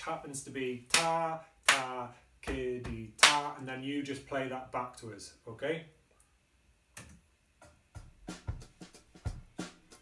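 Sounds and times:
drum beat: 0:07.6 - 0:10.0.

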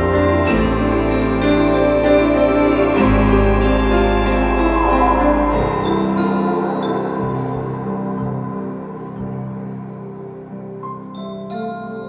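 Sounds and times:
high struck notes ringing: 0:00.0 - 0:10.3
piano and ensemble chords: 0:00.0 - 0:12.0.

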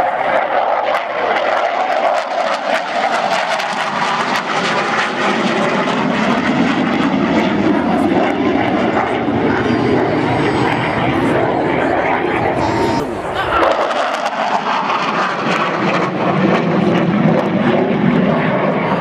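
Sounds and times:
jet fighter flying by: 0:00.0 - 0:19.0.

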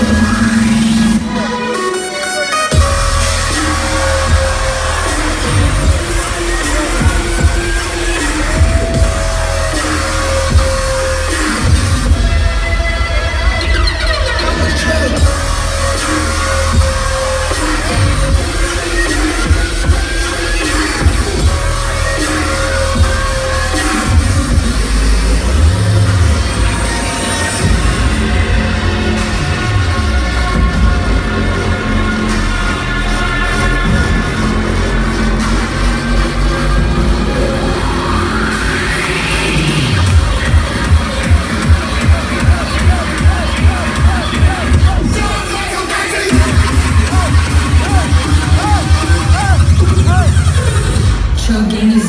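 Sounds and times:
loud live dubstep: 0:00.0 - 0:52.0.

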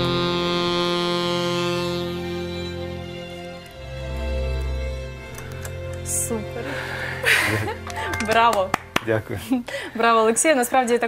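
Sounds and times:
slow saxophone piece: 0:00.0 - 0:07.9
backing track low chord: 0:00.0 - 0:09.4.

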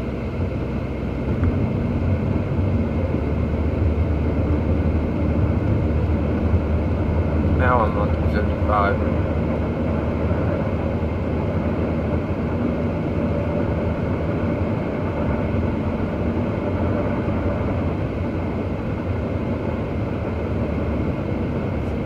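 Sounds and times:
road and engine noise in car: 0:00.0 - 0:22.0.

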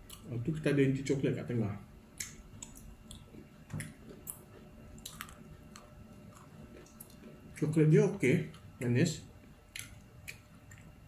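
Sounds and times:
chewing bread: 0:02.2 - 0:07.6, 0:09.7 - 0:11.0.

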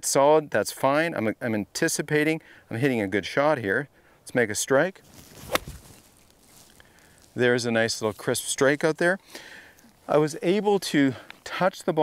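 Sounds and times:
golf club swish: 0:05.0 - 0:07.4
club brushing sand: 0:05.0 - 0:09.0
golf club striking ball: 0:05.1 - 0:06.2.

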